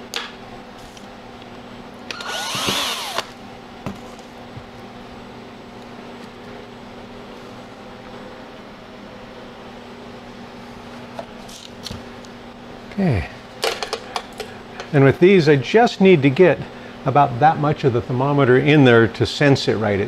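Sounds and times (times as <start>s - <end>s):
steady low hum: 0.0s - 20.0s
cordless drill whine: 2.1s - 3.4s.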